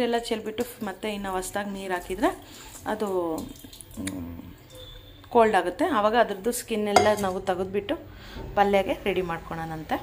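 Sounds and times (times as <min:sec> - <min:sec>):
woman talking: 0:05.3 - 0:10.0
metal pot knocking on stovetop: 0:06.9 - 0:07.5.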